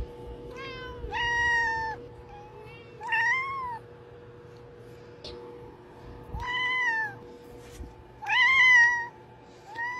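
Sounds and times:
cat meowing: 0.5s - 3.9s, 6.4s - 7.2s, 8.2s - 9.9s.

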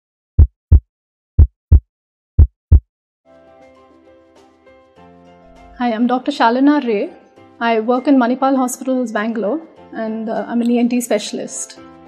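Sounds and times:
heartbeat thump: 0.4s - 0.8s, 1.4s - 1.8s, 2.4s - 2.8s
faint soft music: 5.5s - 12.0s.

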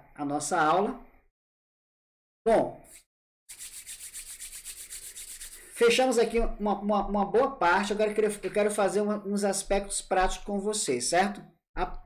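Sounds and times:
hands rubbing together: 2.9s - 6.0s.

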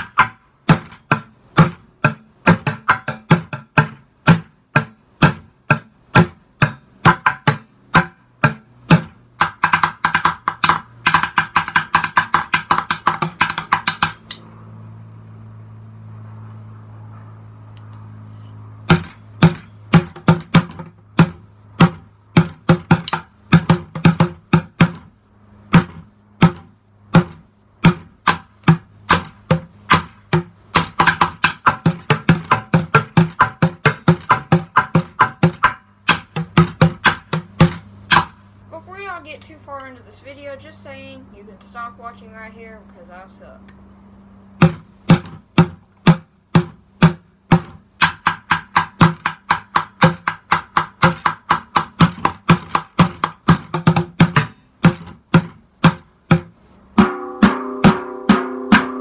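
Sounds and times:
drumsticks beating plastic buckets: 0.0s - 14.4s, 27.2s - 38.4s, 44.6s - 56.5s.

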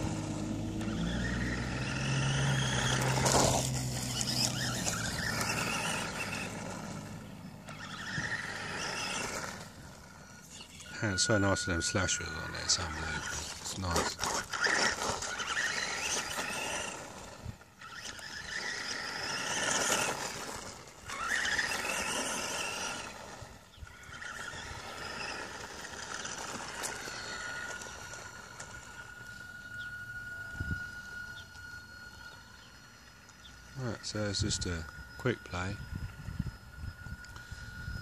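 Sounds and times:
tyres grinding over gravel: 0.0s - 29.9s
rc car electric motor whining: 0.0s - 38.0s.

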